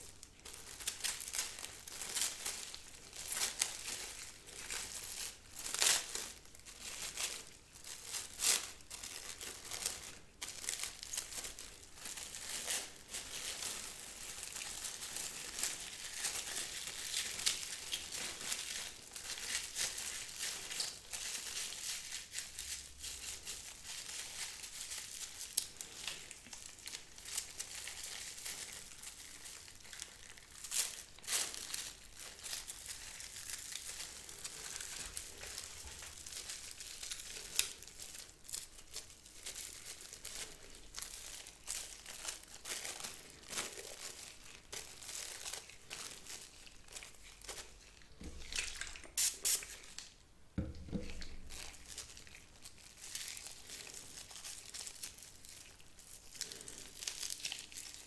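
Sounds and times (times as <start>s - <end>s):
plastic and gloves crinkling: 0.0s - 58.0s.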